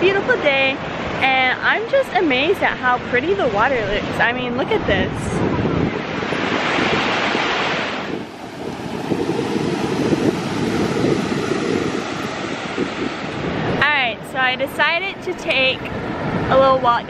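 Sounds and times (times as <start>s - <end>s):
ocean surf breaking: 0.0s - 17.0s
wind on microphone: 0.0s - 17.0s.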